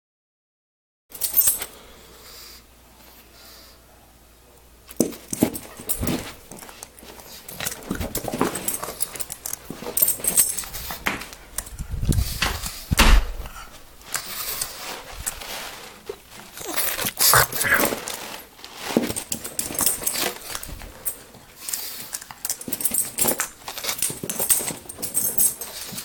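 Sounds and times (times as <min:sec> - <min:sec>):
heavy low thump: 0:12.4 - 0:13.6
puppy making dog noises: 0:17.2 - 0:18.0.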